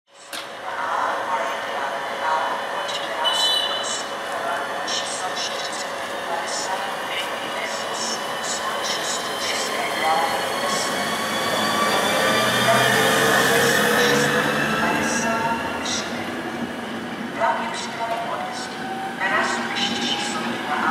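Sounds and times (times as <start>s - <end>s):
low rumble of passing train: 0.5s - 20.9s.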